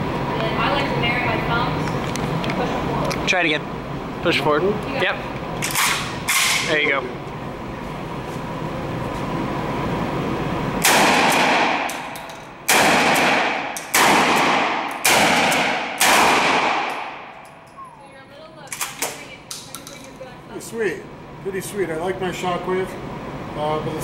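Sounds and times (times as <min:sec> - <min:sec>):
shotgun blasts echoing indoors: 0:10.8 - 0:17.5.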